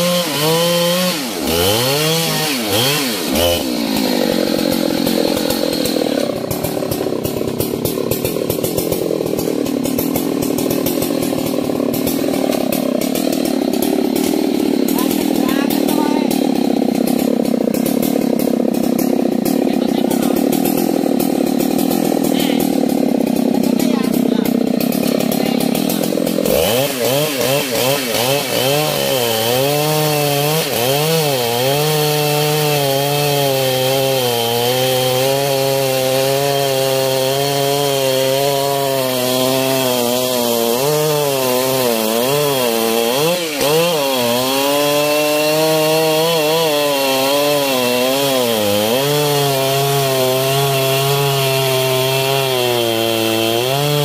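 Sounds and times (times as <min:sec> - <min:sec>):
chainsaw cutting log: 0:00.0 - 0:54.0.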